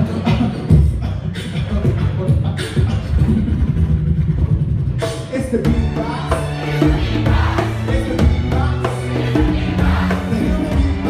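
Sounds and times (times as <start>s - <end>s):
beatboxer making engine-like rumble: 0.0s - 5.4s.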